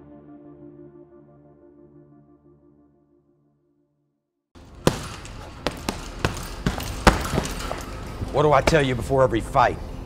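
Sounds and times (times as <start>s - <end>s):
punches thudding on heavy bag: 4.6s - 9.1s.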